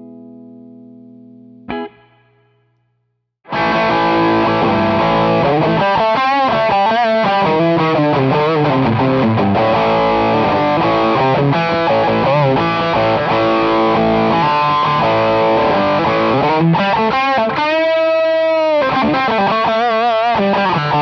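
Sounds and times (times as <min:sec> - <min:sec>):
distorted electric guitar lead: 0:00.0 - 0:02.7, 0:03.5 - 0:21.0.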